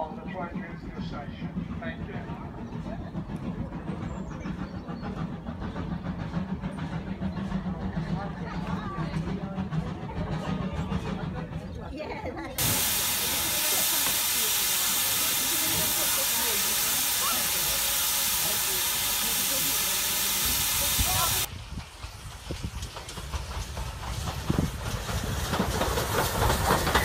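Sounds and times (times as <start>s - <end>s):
train wheels clattering on rails: 0.0s - 27.0s
steam hissing: 12.6s - 27.0s.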